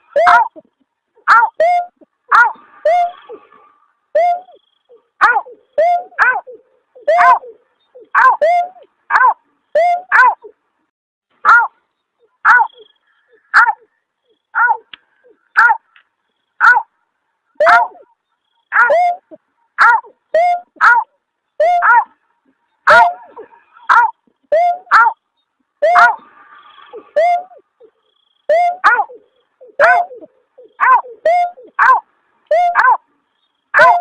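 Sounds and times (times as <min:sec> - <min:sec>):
snipe call: 0:00.0 - 0:00.7, 0:01.3 - 0:08.9, 0:09.7 - 0:10.4, 0:18.7 - 0:21.0, 0:21.6 - 0:22.0, 0:22.9 - 0:25.2, 0:25.8 - 0:33.0, 0:33.8 - 0:34.0.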